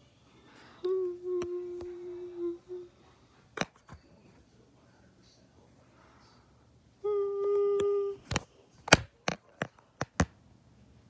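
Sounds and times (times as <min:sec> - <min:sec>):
person humming: 0:00.8 - 0:03.0, 0:07.0 - 0:08.4.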